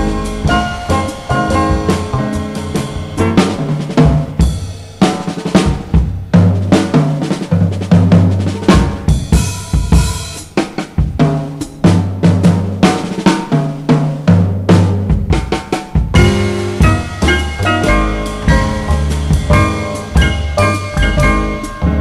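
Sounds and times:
jazz drum solo: 0.0s - 22.0s.

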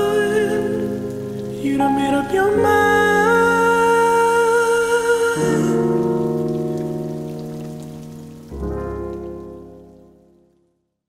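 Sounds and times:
faint crackling hiss: 0.0s - 10.7s.

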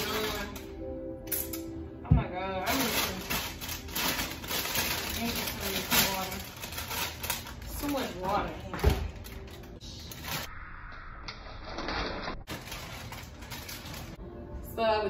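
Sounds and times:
background music: 0.0s - 10.5s, 12.5s - 15.0s
plastic bag crinkling: 2.6s - 10.5s, 12.5s - 14.2s.

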